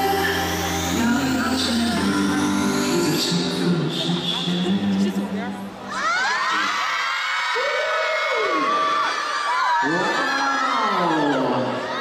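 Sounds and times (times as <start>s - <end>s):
man singing long note: 0.0s - 4.9s
audience screaming and cheering: 5.8s - 12.0s.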